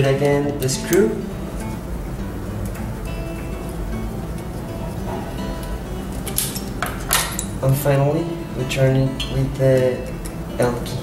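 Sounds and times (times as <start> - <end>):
background music: 0.0 - 11.0
metallic clinks: 6.1 - 7.6.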